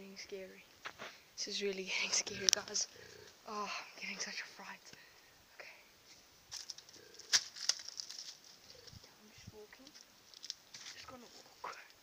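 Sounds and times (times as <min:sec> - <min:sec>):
rustling close to microphone: 0:06.0 - 0:11.9.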